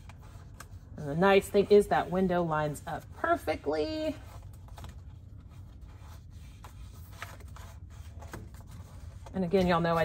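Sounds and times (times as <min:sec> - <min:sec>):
hands rubbing vinyl wrap: 0:00.0 - 0:10.0
low steady hum: 0:00.0 - 0:10.0.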